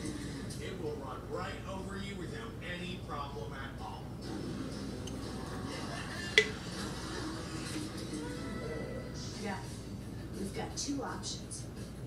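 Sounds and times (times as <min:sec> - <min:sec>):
television playing: 0:00.0 - 0:12.0.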